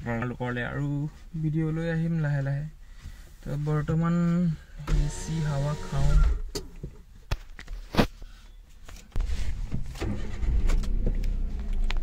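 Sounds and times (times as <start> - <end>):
car engine low rumble: 9.2 - 12.0.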